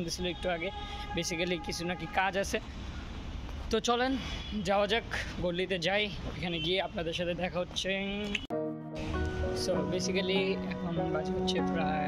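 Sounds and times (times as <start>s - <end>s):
man talking: 9.6s - 12.0s.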